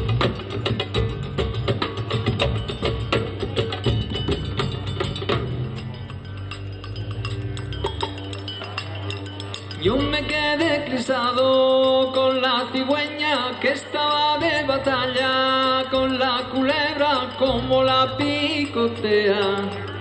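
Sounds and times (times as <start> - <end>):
low sustained tones: 0.0 - 20.0
metal hand percussion clinking: 0.0 - 20.0
man singing: 9.8 - 20.0.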